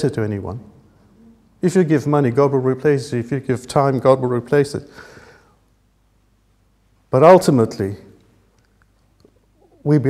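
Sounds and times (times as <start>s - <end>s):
man preaching: 0.0s - 0.7s, 1.6s - 4.9s, 7.1s - 8.1s
faint small sounds: 8.0s - 10.0s.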